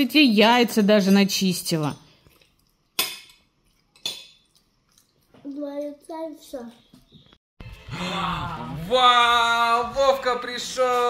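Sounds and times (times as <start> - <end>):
tableware clinking: 3.0 - 3.4, 4.0 - 4.5.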